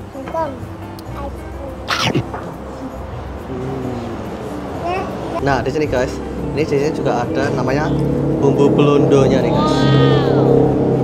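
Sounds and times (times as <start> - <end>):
background music: 0.0 - 11.0
cat-like meow: 9.5 - 10.6.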